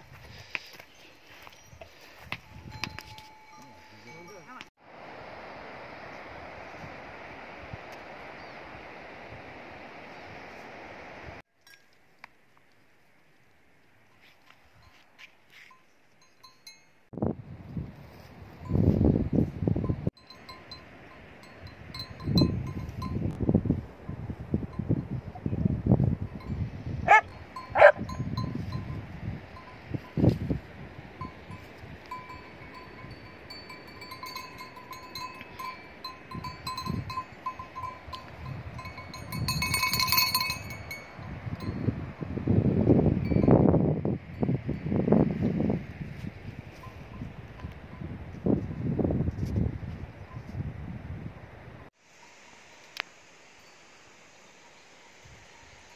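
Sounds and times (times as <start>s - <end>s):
livestock bells clinking: 0.9s - 4.7s, 15.6s - 17.1s, 19.8s - 23.3s, 26.3s - 30.3s, 31.2s - 42.3s, 46.7s - 48.9s
wind rumbling on microphone: 1.7s - 4.2s, 17.1s - 51.9s.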